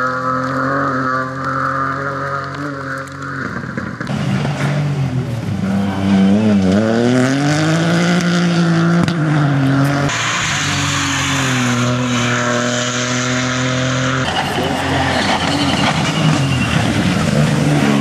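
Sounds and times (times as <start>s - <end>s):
rally car engine at high revs: 0.0s - 18.0s
rough noise: 0.0s - 18.0s
tyres hissing on wet tarmac: 10.1s - 12.2s.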